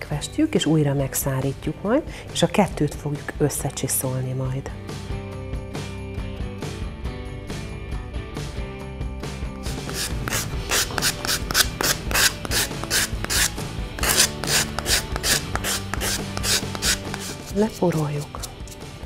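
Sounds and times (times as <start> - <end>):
sanding block rasping on foam: 9.6 - 18.9.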